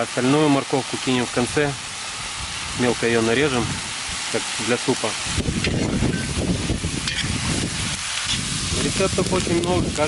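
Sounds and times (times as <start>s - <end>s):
meat and vegetables sizzling: 0.0s - 10.0s
metal spatula stirring: 7.0s - 7.4s.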